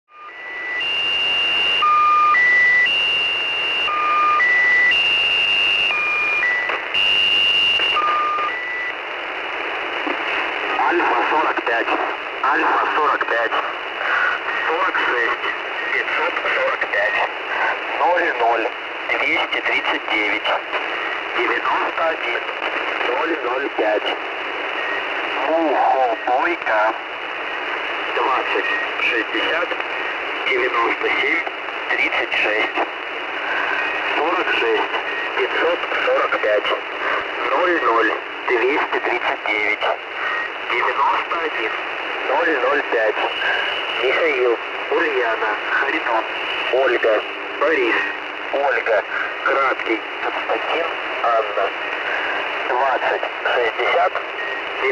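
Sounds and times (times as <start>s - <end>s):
radio static hiss: 0.2s - 54.9s
tinny voice over radio: 10.6s - 27.0s, 28.1s - 54.9s.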